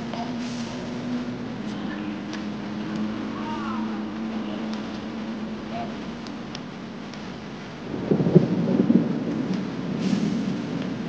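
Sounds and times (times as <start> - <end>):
rolling thunder: 0.0 - 11.0.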